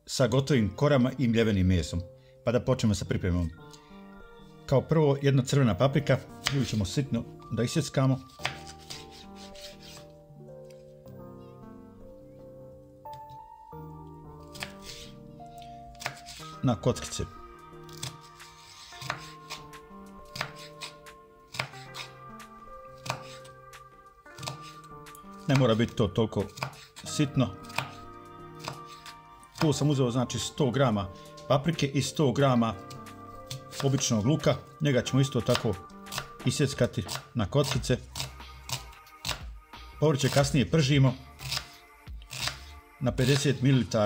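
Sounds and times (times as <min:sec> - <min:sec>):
soft background music: 0:00.0 - 0:44.0
knife chopping on wooden board: 0:06.4 - 0:06.8, 0:08.3 - 0:10.1, 0:14.5 - 0:15.1, 0:15.9 - 0:16.4, 0:17.9 - 0:22.2, 0:23.0 - 0:23.5, 0:24.4 - 0:25.8, 0:26.4 - 0:27.0, 0:27.6 - 0:28.0, 0:28.6 - 0:29.9, 0:32.9 - 0:34.1, 0:35.4 - 0:39.5, 0:41.4 - 0:41.7, 0:42.3 - 0:43.5.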